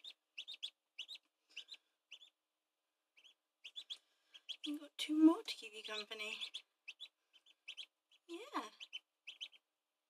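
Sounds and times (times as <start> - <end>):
duckling peeping: 0.0 - 9.8.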